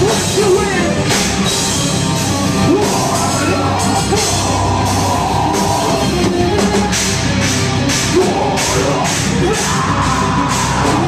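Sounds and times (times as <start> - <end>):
bass guitar: 0.0 - 11.0
distorted electric guitar: 0.0 - 11.0
drum kit: 0.0 - 11.0
person screaming vocals: 2.6 - 6.2, 8.1 - 11.0.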